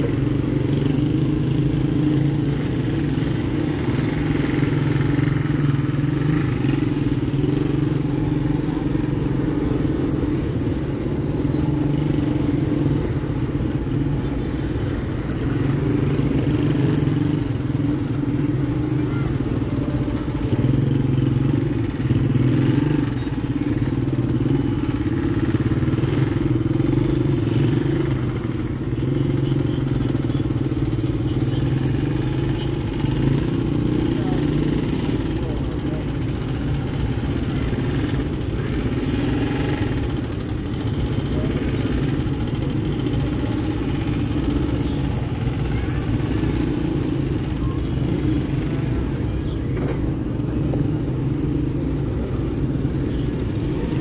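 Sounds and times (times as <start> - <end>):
motorcycle engine idling: 0.0 - 54.0
slow-moving traffic: 0.0 - 54.0
voices: 0.0 - 54.0.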